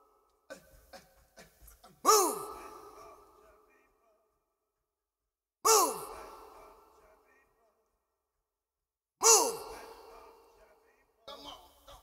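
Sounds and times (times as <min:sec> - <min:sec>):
man's sharp vocal exclamation: 0:05.7 - 0:06.8, 0:09.2 - 0:10.5.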